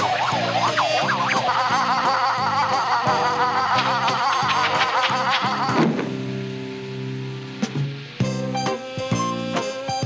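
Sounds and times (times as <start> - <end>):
fast-warbling high tone: 0.0 - 5.8.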